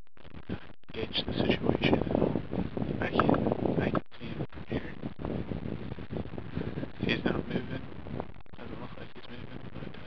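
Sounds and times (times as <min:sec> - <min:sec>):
wind noise on microphone: 0:00.2 - 0:10.0.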